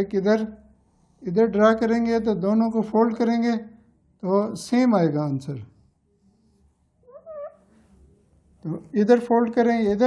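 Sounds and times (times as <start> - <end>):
marker squeaking on whiteboard: 6.2 - 8.0.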